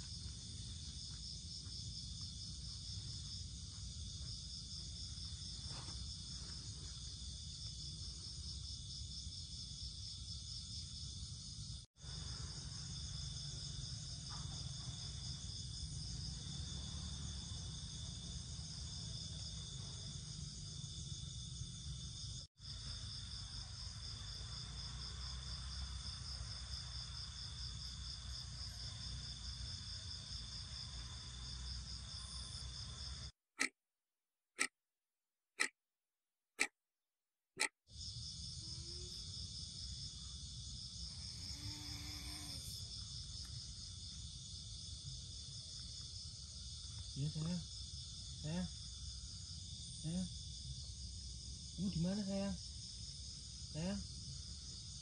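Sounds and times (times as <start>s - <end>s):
night insects trilling: 0.0s - 33.3s, 37.9s - 55.0s.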